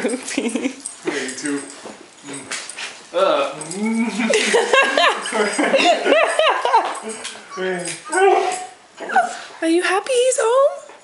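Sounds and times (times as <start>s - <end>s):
dogs whining and yipping: 7.0s - 9.5s.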